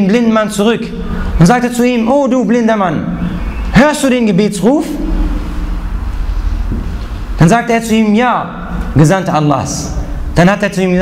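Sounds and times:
faint steady hum: 0:00.0 - 0:11.0
low background rumble: 0:04.8 - 0:11.0.

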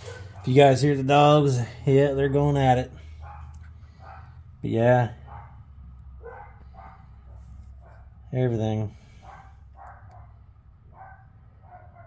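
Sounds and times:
dogs barking: 0:00.0 - 0:01.3, 0:02.9 - 0:08.4, 0:09.0 - 0:12.0
steady low hum: 0:00.0 - 0:12.0.

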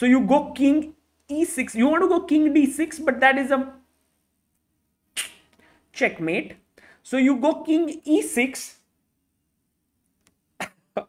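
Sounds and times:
man's sharp intake of breath: 0:06.8 - 0:07.0.

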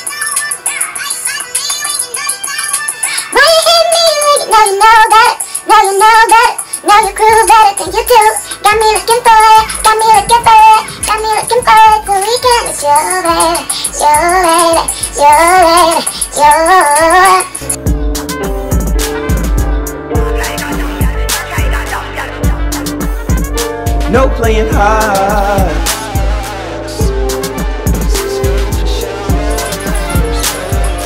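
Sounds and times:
high sung vocal melody: 0:02.1 - 0:17.8, 0:20.1 - 0:31.0
low beat: 0:17.6 - 0:31.0.

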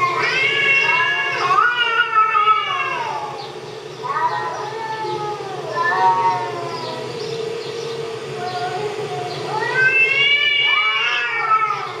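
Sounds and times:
cats yowling: 0:00.0 - 0:07.6, 0:08.3 - 0:12.0.

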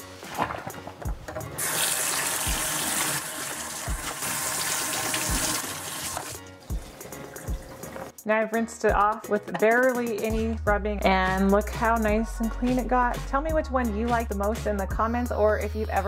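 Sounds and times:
faucet water on plastic container: 0:01.6 - 0:08.1.

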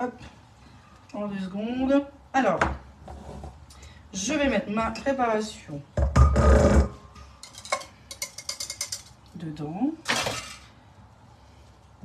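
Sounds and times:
metal kitchenware clinking: 0:06.2 - 0:09.2, 0:10.0 - 0:10.7.

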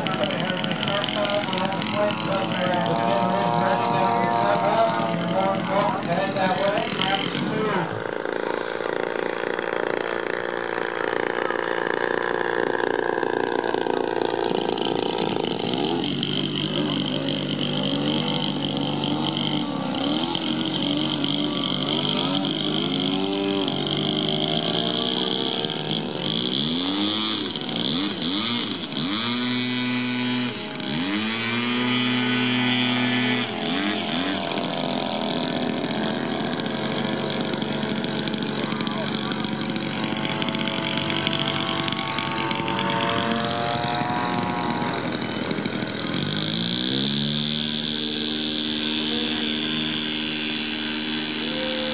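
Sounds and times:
model airplane engine and propeller: 0:00.0 - 0:51.9.

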